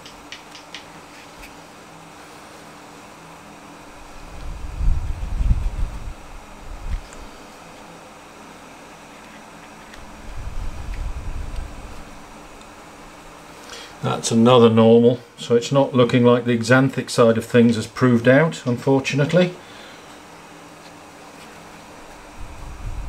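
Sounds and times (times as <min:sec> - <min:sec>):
fan hum and hiss: 0:00.0 - 0:23.0.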